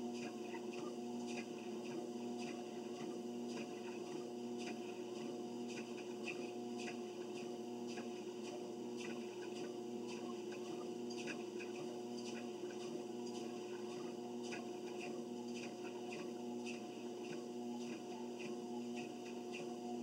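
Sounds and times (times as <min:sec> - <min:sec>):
treadmill motor hum: 0:00.0 - 0:20.0.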